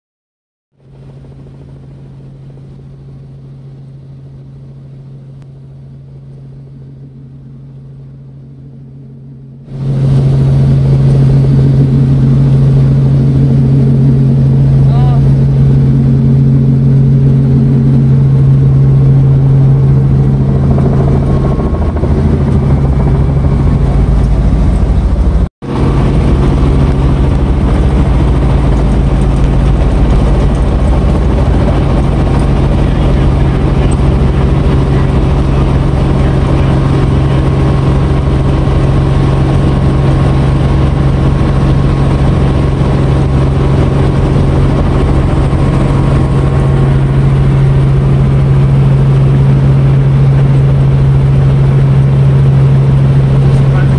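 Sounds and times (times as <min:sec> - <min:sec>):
helicopter engine and rotor drone: 0:00.8 - 0:53.9.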